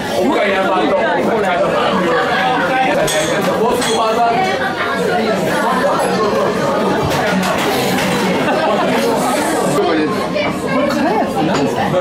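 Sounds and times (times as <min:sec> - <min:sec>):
hubbub of overlapping voices: 0:00.0 - 0:12.0.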